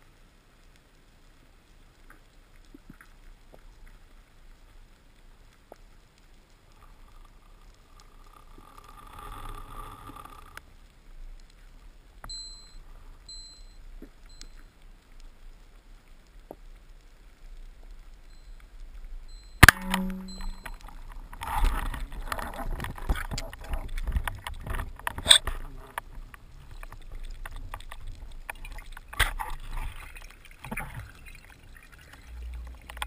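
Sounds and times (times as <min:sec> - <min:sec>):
crackling and knocking underwater: 0:00.0 - 0:33.0
speargun firing underwater: 0:19.6 - 0:20.6.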